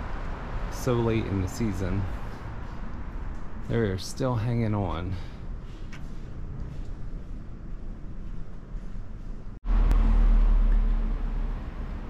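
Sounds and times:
street noise: 0:00.0 - 0:12.0
vehicle engine running close by: 0:09.6 - 0:12.0.

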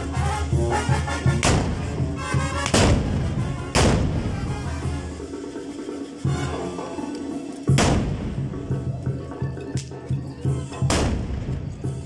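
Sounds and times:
band music: 0:00.0 - 0:12.0
musket shot: 0:01.4 - 0:02.0, 0:02.6 - 0:04.4, 0:07.7 - 0:08.4, 0:10.9 - 0:11.6.

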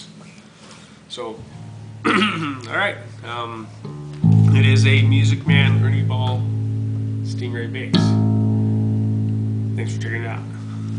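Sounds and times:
electric bass note ringing: 0:01.4 - 0:10.9.

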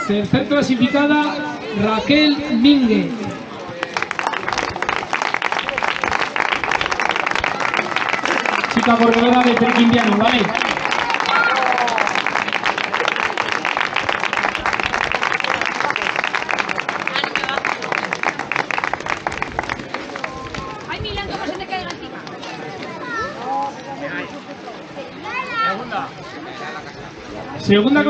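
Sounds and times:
crowd applauding: 0:03.8 - 0:21.0.

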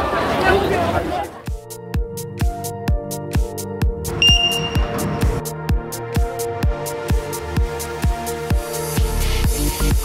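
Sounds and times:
electronic dance music: 0:04.2 - 0:05.4
high electronic beep: 0:04.2 - 0:05.4.

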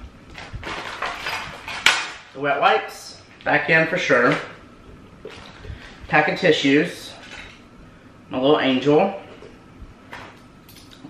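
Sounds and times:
items packed into bag: 0:00.3 - 0:02.1.

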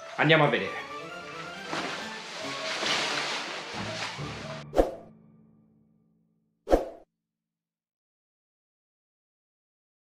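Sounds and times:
background music: 0:00.0 - 0:06.5.

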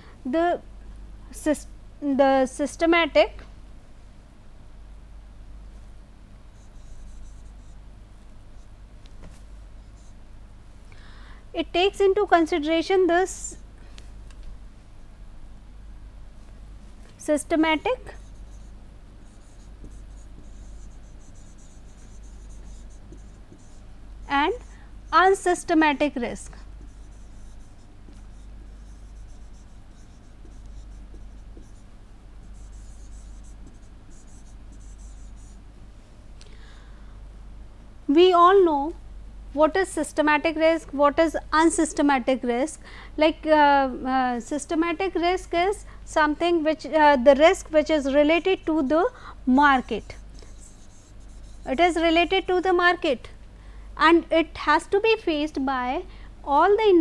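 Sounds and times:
low electrical hum: 0:00.0 - 0:57.0
stylus scratching on tablet: 0:06.5 - 0:08.8, 0:09.5 - 0:10.2, 0:17.3 - 0:35.7, 0:47.6 - 0:52.9.

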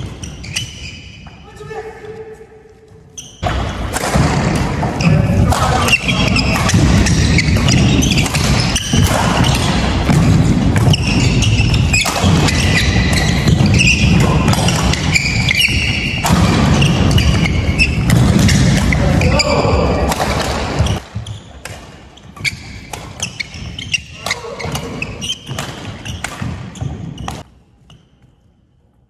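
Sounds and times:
shoes squeaking: 0:00.0 - 0:03.9, 0:04.7 - 0:19.8, 0:20.4 - 0:28.5
rackets hitting shuttlecock: 0:03.4 - 0:28.0.

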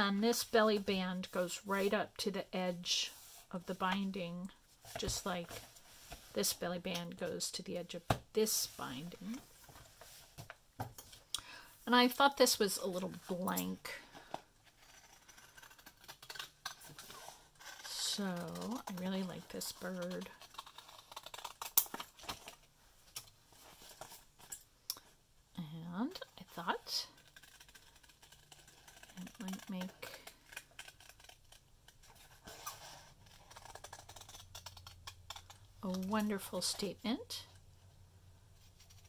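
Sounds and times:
scissors cutting paper: 0:14.7 - 0:22.1, 0:26.6 - 0:36.9.

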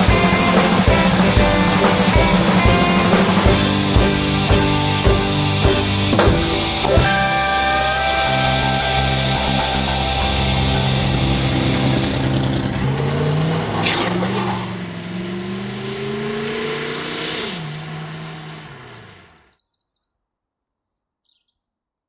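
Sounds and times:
car engine pulling away: 0:00.0 - 0:19.5.

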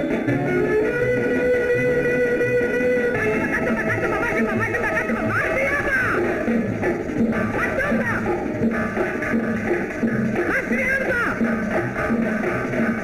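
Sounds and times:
old film song with guitar: 0:00.0 - 0:13.0.

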